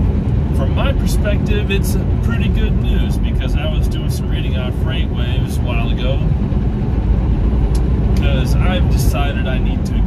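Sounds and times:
truck engine and road noise: 0:00.0 - 0:10.0.

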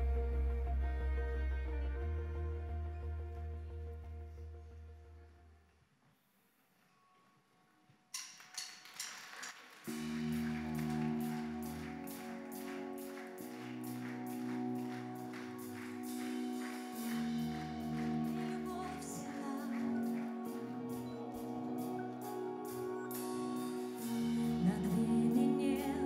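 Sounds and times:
bass: 0:00.0 - 0:05.6, 0:09.9 - 0:26.0
drum and cymbal hits: 0:09.9 - 0:19.0
steady cymbal beat: 0:09.9 - 0:26.0
sustained keyboard chords: 0:09.9 - 0:26.0.

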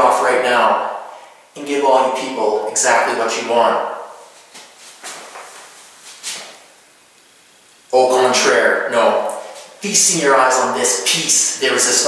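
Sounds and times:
t-shirt rustling swishes: 0:04.2 - 0:06.7.

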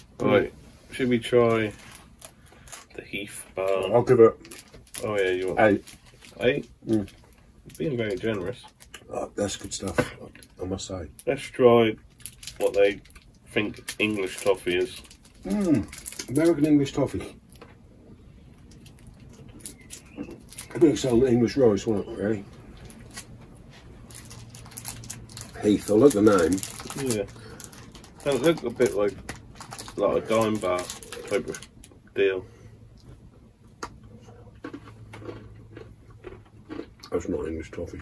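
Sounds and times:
candy wrapper crinkling: 0:01.4 - 0:17.6, 0:18.6 - 0:32.0
crunching toffee bar: 0:01.5 - 0:17.7, 0:18.6 - 0:23.4, 0:24.0 - 0:32.0, 0:33.8 - 0:37.8
man talking: 0:20.7 - 0:22.5, 0:25.5 - 0:27.3, 0:28.2 - 0:29.2, 0:29.9 - 0:32.5, 0:37.0 - 0:38.0.

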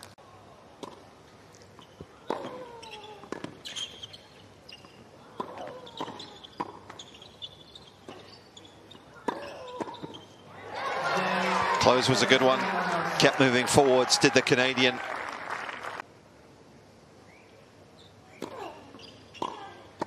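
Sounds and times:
tennis ball bouncing on court: 0:02.0 - 0:03.6, 0:05.3 - 0:07.2, 0:08.0 - 0:10.2, 0:18.4 - 0:20.0
tennis ball struck by rackets: 0:09.2 - 0:10.2.

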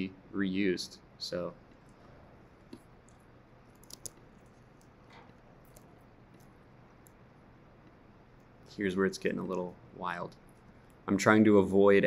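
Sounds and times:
computer mouse clicks: 0:02.7 - 0:07.2.

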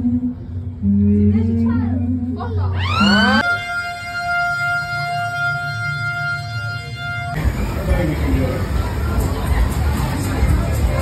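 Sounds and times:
low steady hum: 0:00.0 - 0:09.9
siren-like rising tone: 0:02.8 - 0:08.9.

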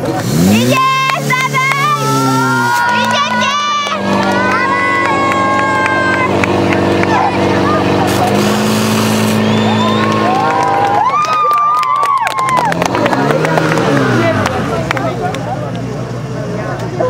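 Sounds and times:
fire pump engine running: 0:00.0 - 0:17.0
people shouting and cheering: 0:00.4 - 0:16.0.

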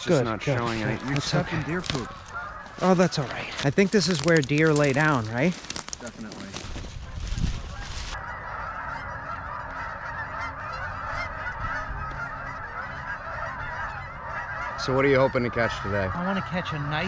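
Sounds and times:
flock of geese honking: 0:00.0 - 0:17.0
footsteps crunching through dry leaves: 0:00.4 - 0:08.2.

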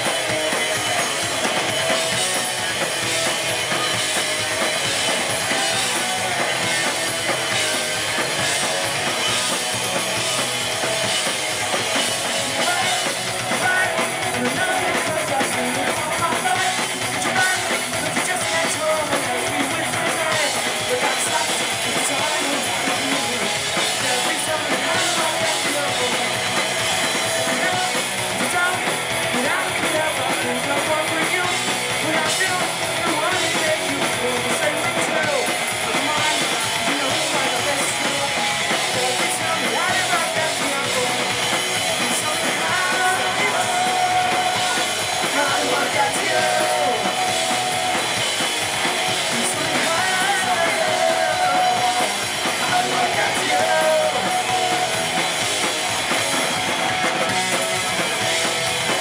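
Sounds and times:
bass guitar: 0:00.0 - 0:59.0
distorted electric guitars: 0:00.0 - 0:59.0
pounding drum kit: 0:00.0 - 0:59.0
person singing: 0:11.7 - 0:48.4, 0:49.2 - 0:55.2.

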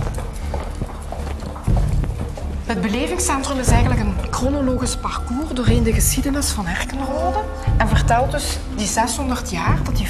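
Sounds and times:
footsteps on hard floor: 0:00.0 - 0:04.6
faint music: 0:00.0 - 0:10.0.

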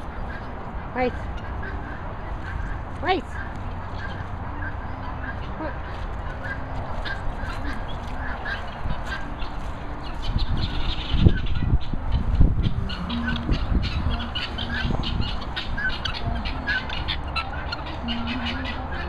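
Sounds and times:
guineafowl calling: 0:00.0 - 0:19.0.

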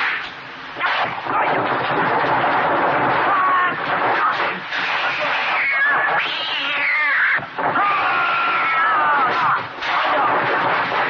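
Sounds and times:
fight soundtrack noise: 0:00.0 - 0:06.8, 0:07.4 - 0:08.2, 0:09.0 - 0:11.0.

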